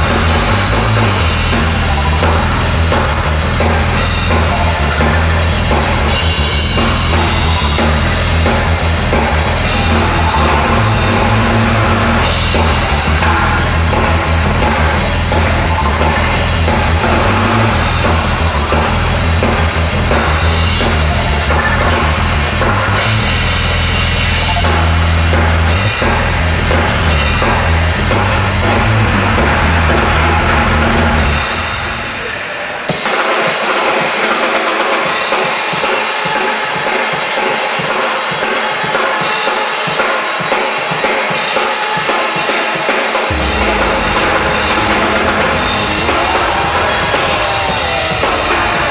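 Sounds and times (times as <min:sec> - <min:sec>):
deep bass line: 0:00.0 - 0:31.6, 0:43.3 - 0:48.9
drum kit playing rock beat: 0:00.0 - 0:48.9.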